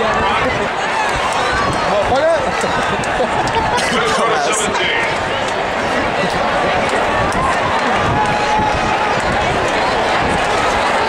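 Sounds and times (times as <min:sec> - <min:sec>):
nearby voices: 0:00.0 - 0:08.6
stadium crowd talking: 0:00.0 - 0:11.0.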